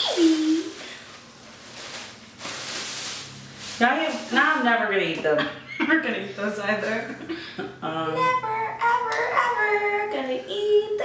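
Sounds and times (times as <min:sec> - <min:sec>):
plastic bag rustling: 0:00.0 - 0:05.2.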